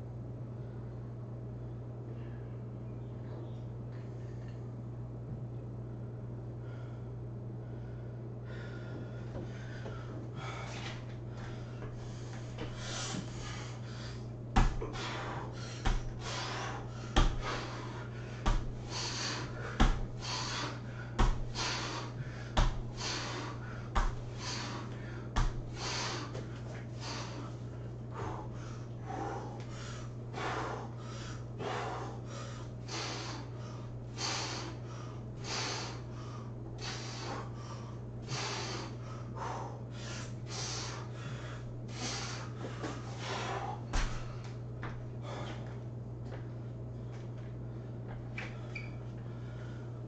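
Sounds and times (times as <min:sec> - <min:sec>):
steady low hum: 0:00.0 - 0:50.0
man breathing hard: 0:06.5 - 0:45.8, 0:48.4 - 0:50.0
man exhaling forcefully: 0:12.7 - 0:26.4, 0:34.2 - 0:44.4
foot thudding on floor: 0:14.5 - 0:15.1, 0:15.8 - 0:17.8, 0:18.4 - 0:18.9, 0:19.6 - 0:20.5, 0:21.2 - 0:21.9, 0:22.5 - 0:23.0, 0:23.9 - 0:24.4, 0:25.4 - 0:25.8, 0:43.9 - 0:46.5.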